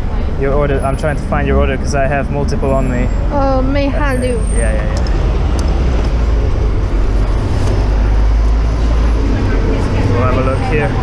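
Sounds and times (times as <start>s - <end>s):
bus diesel engine running: 0.0s - 11.0s
city street traffic rumble: 0.0s - 11.0s.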